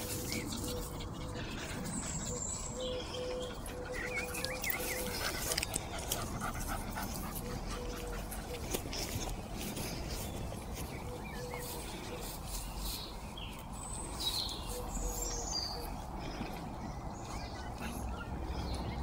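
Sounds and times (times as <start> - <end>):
grass rustling: 0.0 - 2.8, 3.6 - 15.5
birds calling: 0.0 - 19.0
dog panting and sniffing: 0.0 - 19.0.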